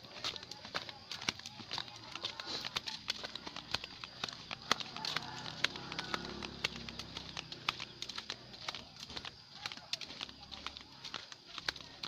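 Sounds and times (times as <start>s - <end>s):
sandal footsteps on dirt path: 0.0s - 12.0s.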